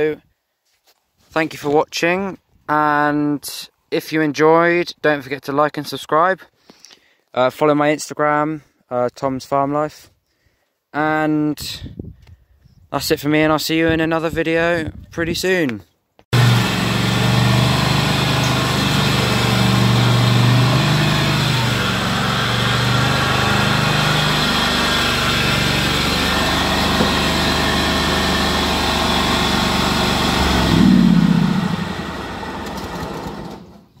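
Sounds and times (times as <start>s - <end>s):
ride-on mower engine running: 16.4s - 33.8s.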